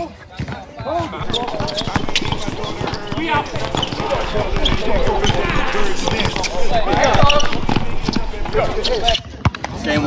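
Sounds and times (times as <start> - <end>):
players calling out: 1.2 - 9.2
basketball bouncing on hard court: 1.2 - 9.6.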